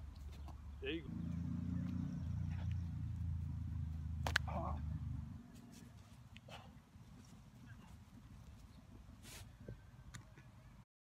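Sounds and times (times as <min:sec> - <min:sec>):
low steady rumble: 0:00.0 - 0:05.7.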